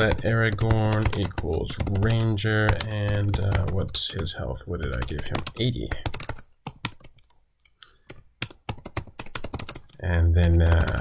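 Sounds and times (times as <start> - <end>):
typing on computer keyboard: 0.0 - 11.0.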